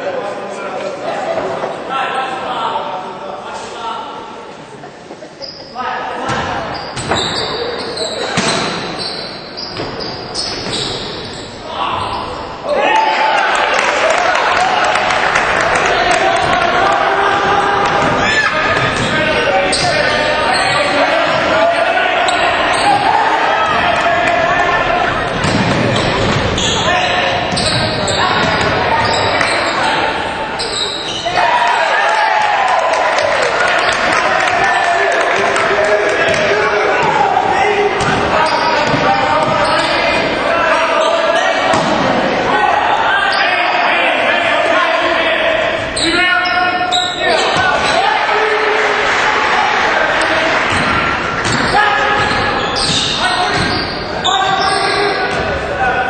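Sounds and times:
echoing voices of players and crowd: 0.0s - 56.0s
basketball bouncing on court: 27.5s - 29.3s, 38.0s - 39.9s.

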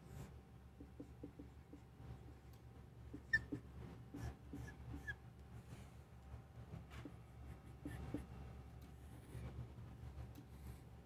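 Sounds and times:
low room hum: 0.0s - 11.0s
marker squeaking on whiteboard: 0.8s - 1.8s, 3.1s - 5.2s, 7.8s - 8.3s.

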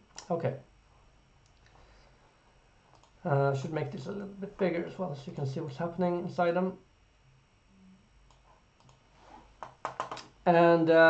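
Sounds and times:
faint computer mouse clicks: 2.9s - 3.2s, 8.3s - 9.0s.

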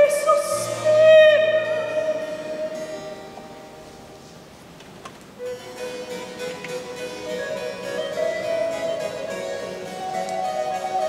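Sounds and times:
melody line with long notes: 0.0s - 4.8s, 5.4s - 11.0s
harpsichord: 0.6s - 11.0s.

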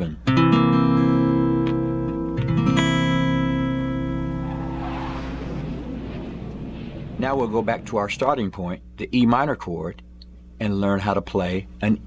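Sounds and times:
acoustic guitar chord strummed: 0.2s - 4.4s.

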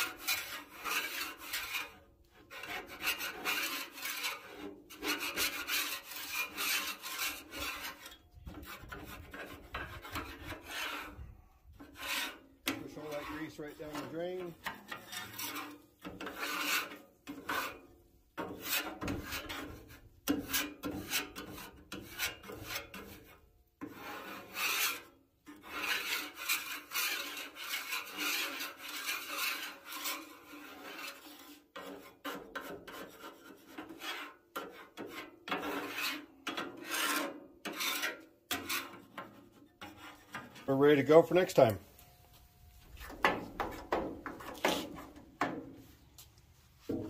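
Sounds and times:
scraper scraping metal griddle: 0.0s - 41.8s, 42.8s - 46.1s.

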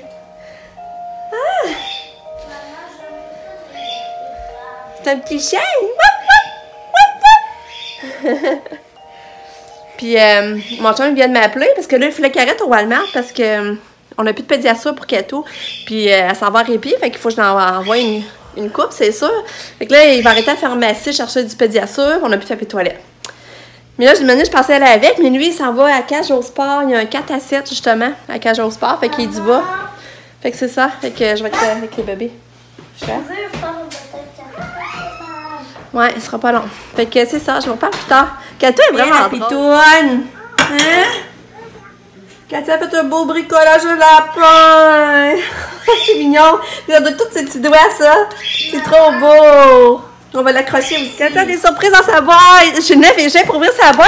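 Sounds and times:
child whining cry: 34.5s - 35.8s.

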